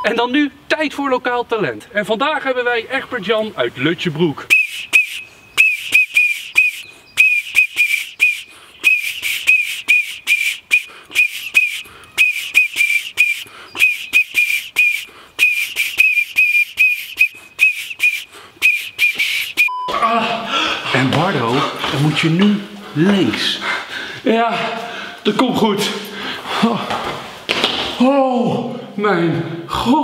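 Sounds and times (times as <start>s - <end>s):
metal whistle toots: 4.5s - 19.9s.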